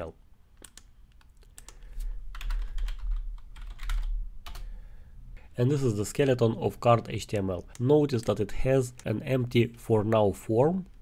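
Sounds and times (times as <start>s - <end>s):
computer keyboard typing: 0.6s - 4.7s.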